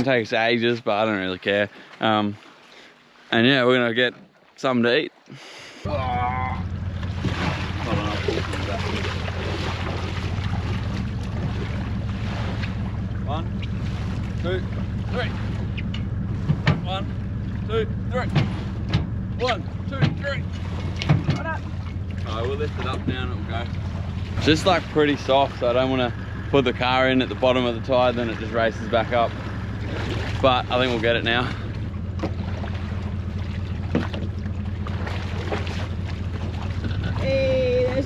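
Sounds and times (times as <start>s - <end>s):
engine idling hum: 0.0s - 4.1s, 5.3s - 38.0s.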